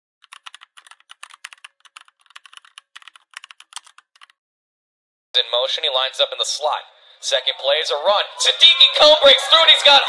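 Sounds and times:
keyboard typing: 0.2 - 4.4.

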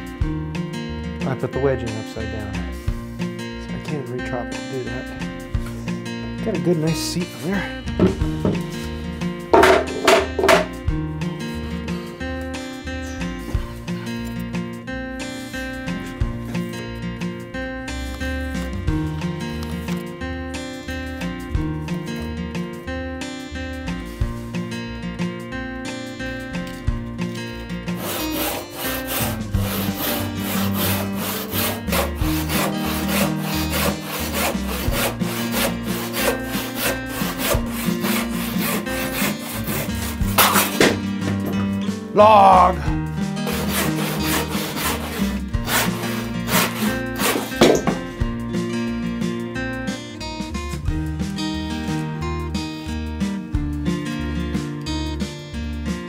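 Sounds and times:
background music: 0.0 - 56.0
hand tool cutting into wood: 27.9 - 41.6, 43.4 - 48.1.

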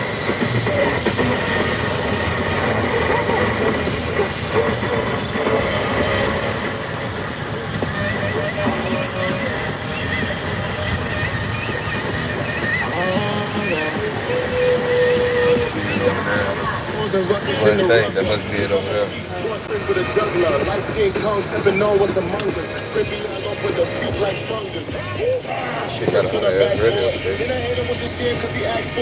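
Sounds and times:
car road and engine noise: 0.0 - 29.0
music with singing from car stereo: 0.0 - 29.0.

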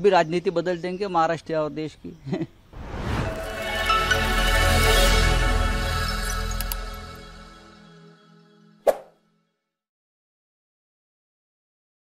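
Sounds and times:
outro music: 2.8 - 8.1
short sharp pop effect: 8.9 - 9.1.

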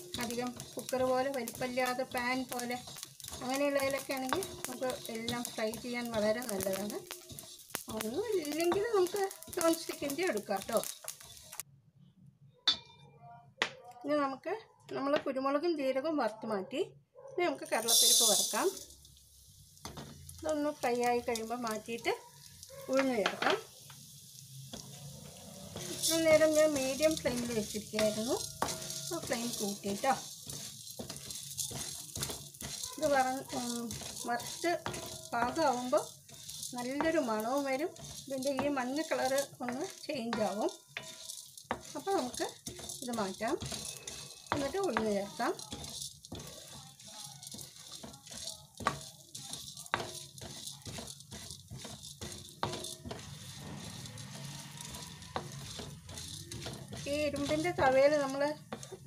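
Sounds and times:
grains poured into a pan: 0.0 - 11.6, 17.7 - 59.0
grains sizzling and rattling in pan: 0.0 - 11.7, 17.6 - 59.0.

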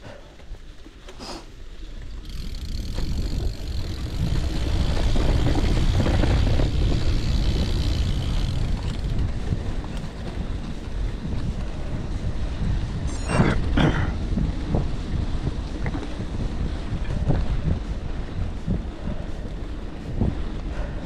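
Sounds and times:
bike tyres rumbling on gravel: 0.1 - 21.0
wind buffeting microphone: 1.8 - 21.0.

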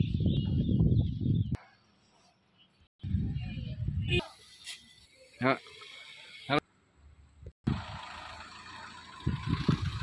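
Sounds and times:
car engine idling: 7.7 - 10.0.

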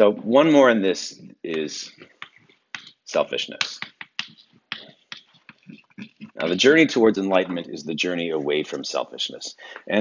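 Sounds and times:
chalk tapping on chalkboard: 2.0 - 6.6.

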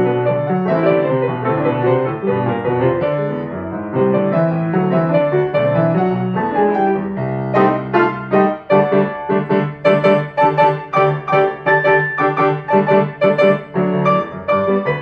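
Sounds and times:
grand piano four hands: 0.0 - 15.0.

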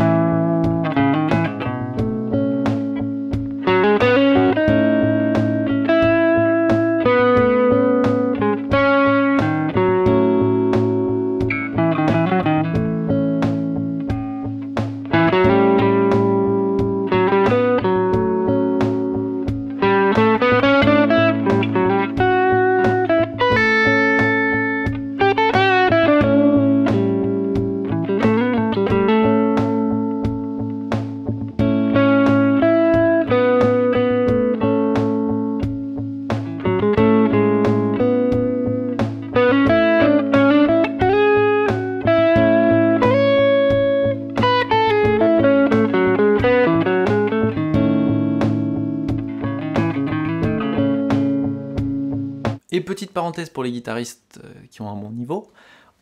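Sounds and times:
looped guitar chord: 0.0 - 52.6
steady drum beat: 0.0 - 52.8
electric guitar melodic lines: 0.0 - 53.4.

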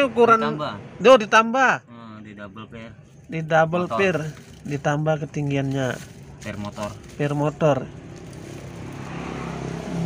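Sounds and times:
motor vehicle passing: 6.1 - 10.0.

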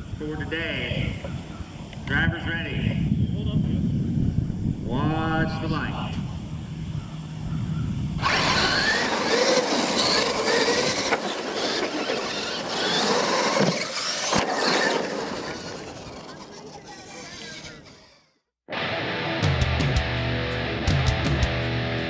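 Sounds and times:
toy truck electric motors whining: 8.2 - 18.4.

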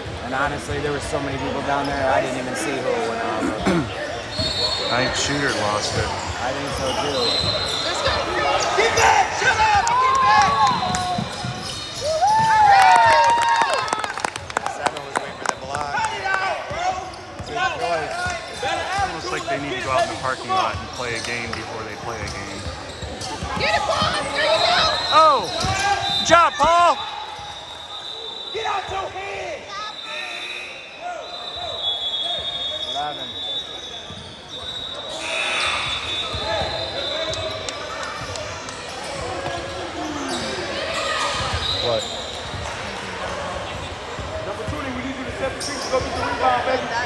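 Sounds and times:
sneakers squeaking: 0.0 - 13.8, 16.0 - 47.0.

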